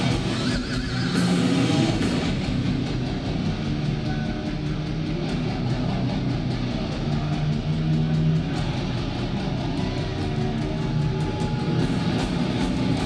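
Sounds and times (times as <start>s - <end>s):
distorted electric guitars: 0.0s - 13.0s
heavy metal band playing: 0.0s - 13.0s.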